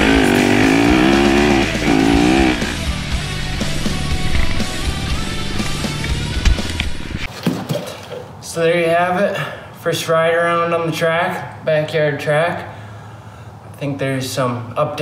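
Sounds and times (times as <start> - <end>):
dirt bike engine revving: 0.0 - 6.4
rock background music: 0.0 - 7.3.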